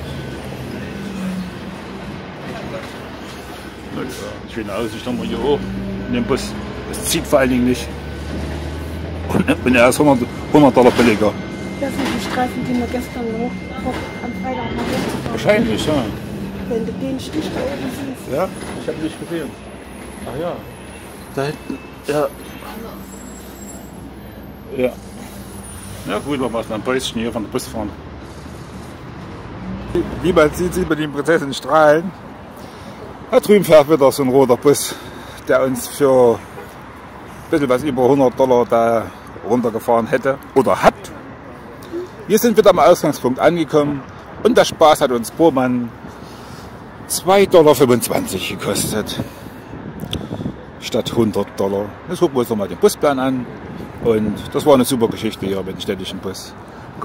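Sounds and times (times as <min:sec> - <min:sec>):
bus engine and road noise: 0:00.0 - 0:57.0.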